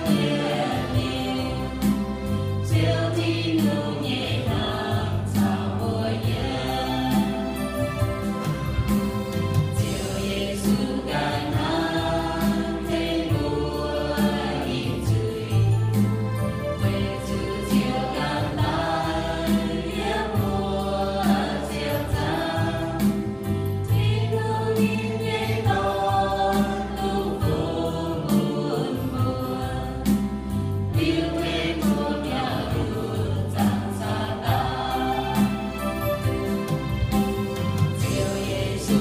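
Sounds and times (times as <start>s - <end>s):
group singing a hymn: 0.0s - 39.0s.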